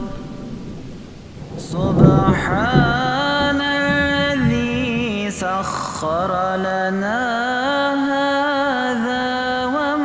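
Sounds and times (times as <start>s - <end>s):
rain hiss: 0.0s - 6.4s
thunder rumble: 0.0s - 6.5s
person chanting: 1.4s - 10.0s.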